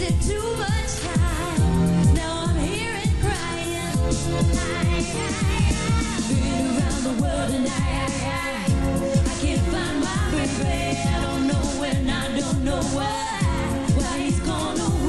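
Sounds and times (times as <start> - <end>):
band playing dance beat: 0.0 - 15.0
woman singing into a microphone: 0.0 - 15.0.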